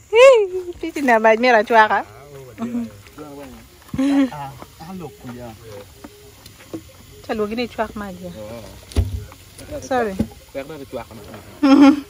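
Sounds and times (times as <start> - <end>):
people talking: 0.0 - 6.0, 7.2 - 12.0
wood fire popping: 1.0 - 11.5.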